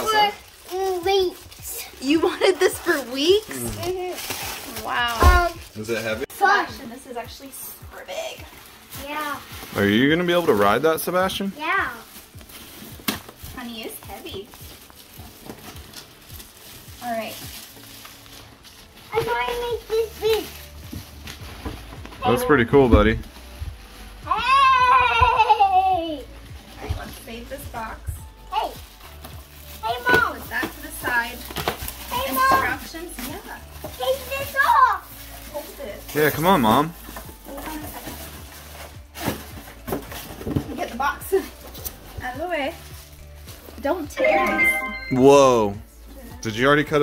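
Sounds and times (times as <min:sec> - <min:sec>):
plastic wrap rustling: 0:00.0 - 0:44.1.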